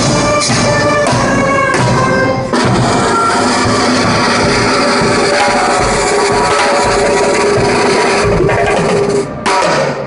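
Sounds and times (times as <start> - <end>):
snare drum: 0.0 - 10.0
street band playing: 0.0 - 10.0.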